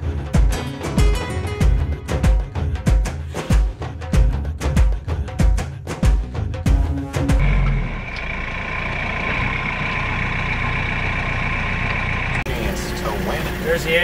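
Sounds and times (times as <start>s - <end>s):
background music with drums: 0.0s - 7.4s
tractor diesel engine running: 6.2s - 14.0s
man talking: 12.5s - 14.0s.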